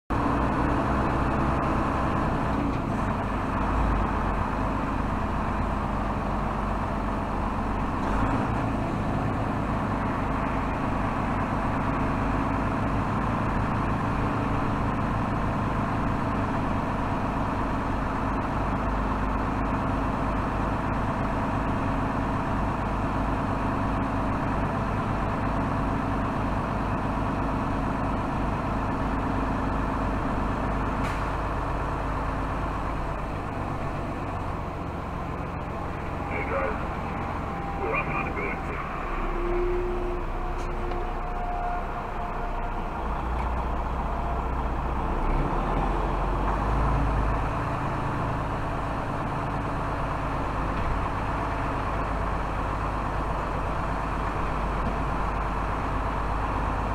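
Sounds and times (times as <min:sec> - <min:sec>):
truck diesel engine running: 0:00.1 - 0:56.9.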